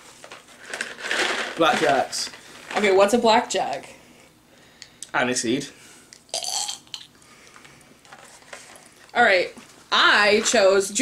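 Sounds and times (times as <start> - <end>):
candy packaging clicks and rustles: 0.2 - 3.0.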